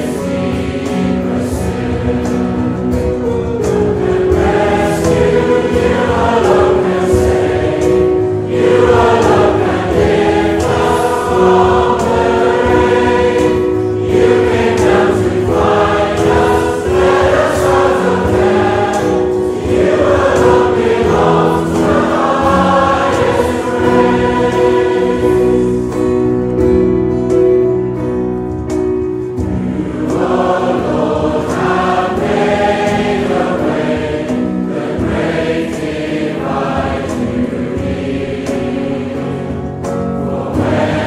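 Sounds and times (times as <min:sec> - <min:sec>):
group singing worship song: 0:00.0 - 0:26.5, 0:29.4 - 0:41.0
instrumental accompaniment: 0:00.0 - 0:41.0.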